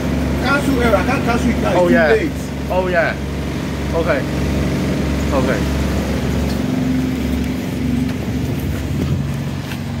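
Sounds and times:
bus diesel engine idling: 0:00.0 - 0:10.0.

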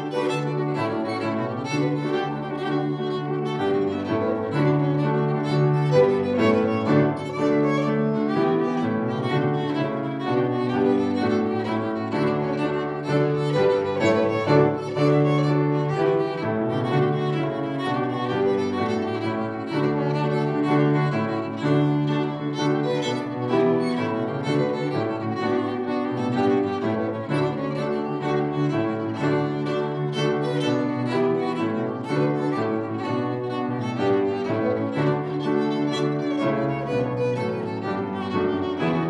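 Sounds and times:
fiddle melody: 0:00.0 - 0:39.0
piano accompaniment: 0:00.0 - 0:39.0.

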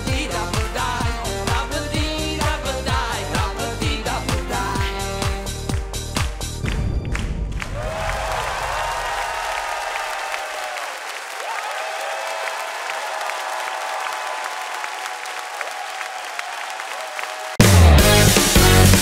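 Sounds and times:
dance-pop backing track: 0:00.0 - 0:06.6
audience applauding and cheering: 0:06.3 - 0:19.0
whoops: 0:07.7 - 0:17.6.

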